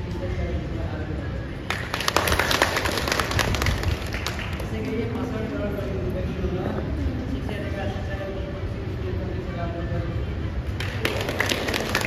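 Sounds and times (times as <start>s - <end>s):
audience applauding: 1.7s - 4.7s, 10.8s - 12.0s.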